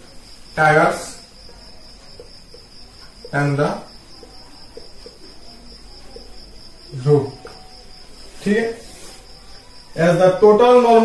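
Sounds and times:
cricket trilling: 0.0s - 11.0s.

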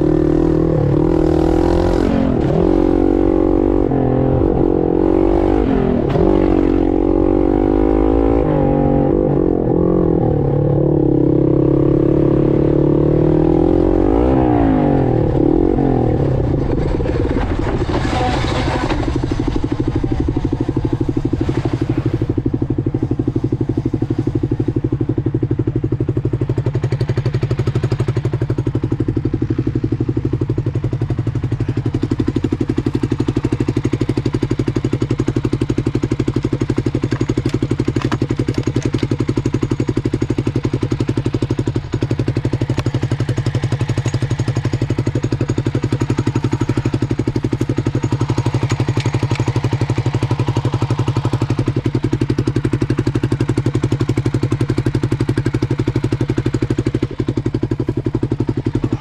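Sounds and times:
motorcycle engine idling: 18.6s - 59.0s.

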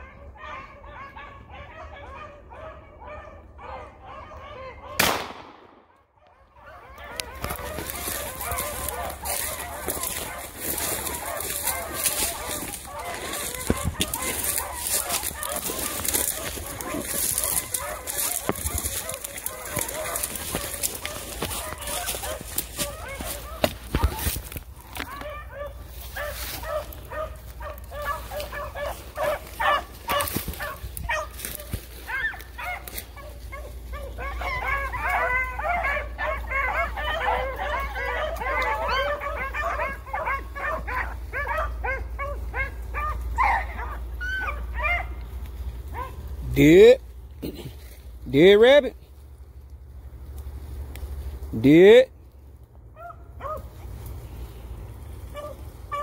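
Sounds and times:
dogs barking and yipping: 0.0s - 56.0s
brush rustling underfoot: 6.9s - 56.0s.

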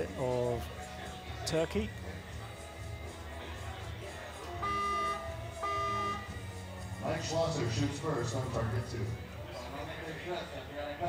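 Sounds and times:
electronic buzzer tones: 4.6s - 6.4s.

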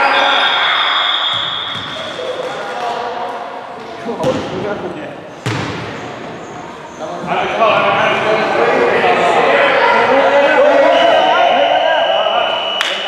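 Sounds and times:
players' voices: 0.0s - 13.0s
basketball bouncing on hardwood: 5.4s - 5.8s.

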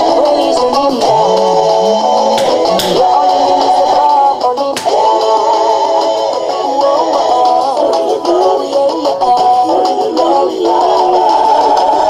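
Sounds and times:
instrumental backing: 0.0s - 11.9s
person singing worship song: 0.0s - 12.0s
sharp percussive hit: 2.3s - 3.2s.

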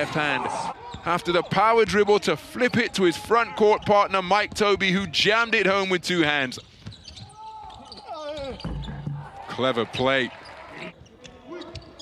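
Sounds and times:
shoe squeaks: 6.5s - 9.2s, 10.4s - 12.0s.

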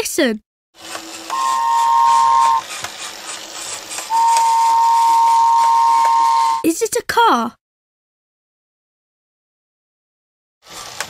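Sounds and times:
steam train whistle: 1.3s - 2.7s, 4.1s - 6.7s.

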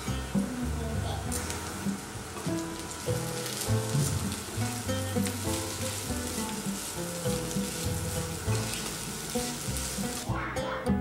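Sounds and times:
chicken sizzling in a pan: 0.0s - 10.6s
soft plucked background music: 0.0s - 11.0s
spatula stirring: 1.4s - 10.3s.

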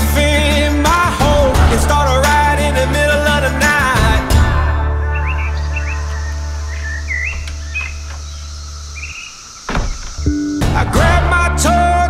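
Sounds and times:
birds chirping: 3.0s - 10.9s
brief thump: 9.7s - 10.3s.

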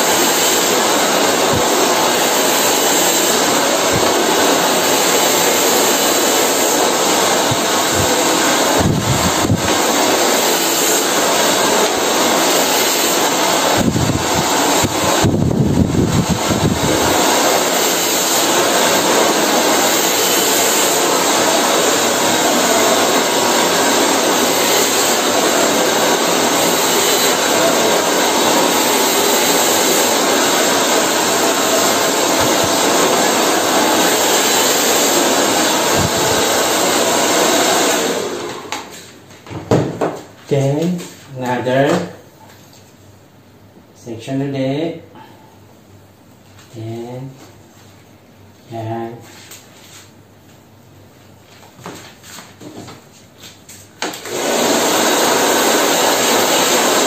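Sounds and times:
hair dryer running: 0.0s - 40.1s, 53.9s - 57.0s.

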